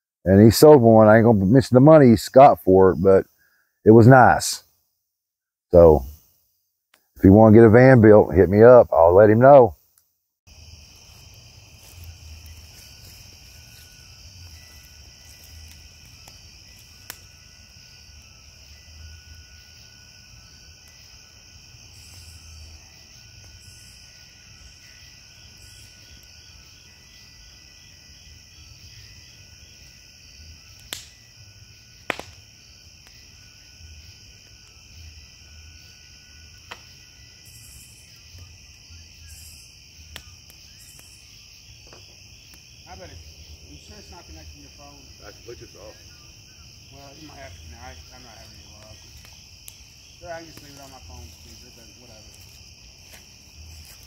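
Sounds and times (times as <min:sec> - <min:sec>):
night insects trilling: 0:00.2 - 0:54.0.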